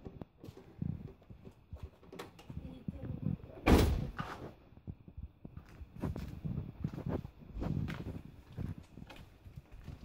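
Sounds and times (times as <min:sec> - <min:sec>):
loud bang like door shut: 0:03.6 - 0:04.2.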